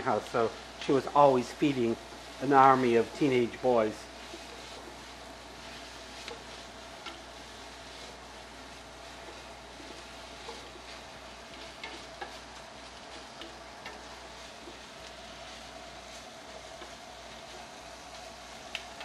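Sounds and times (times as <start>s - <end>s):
food sizzling in a pot: 0.0s - 19.0s
spoon stirring against pot: 5.6s - 17.8s.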